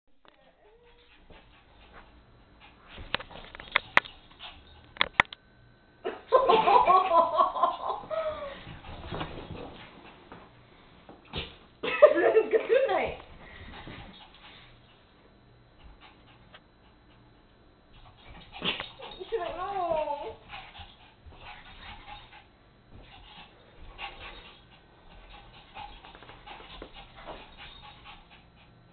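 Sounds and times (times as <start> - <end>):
small dogs playing: 0.3 - 5.2, 7.3 - 28.9.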